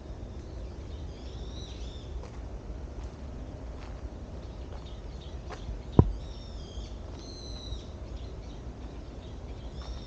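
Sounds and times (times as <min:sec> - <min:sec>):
high drawn-out bird calls: 0:04.6 - 0:10.0.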